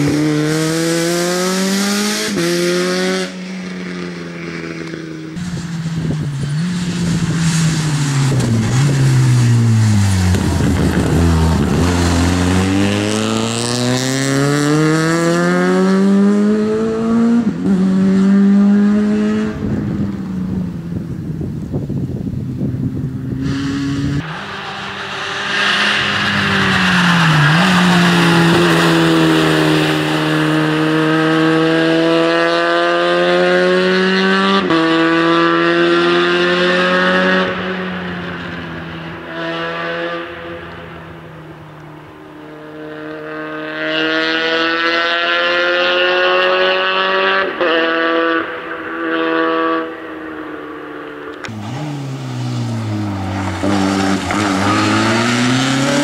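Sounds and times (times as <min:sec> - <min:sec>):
car engine revving hard: 0:00.0 - 0:03.4, 0:06.5 - 0:19.8, 0:24.9 - 0:37.9, 0:51.4 - 0:56.0.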